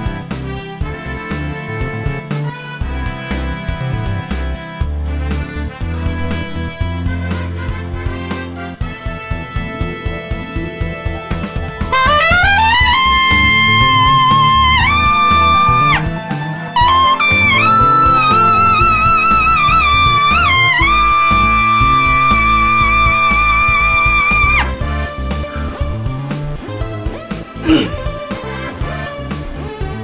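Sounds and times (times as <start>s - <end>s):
trumpet playing high notes: 5.8s - 10.2s, 11.9s - 25.7s.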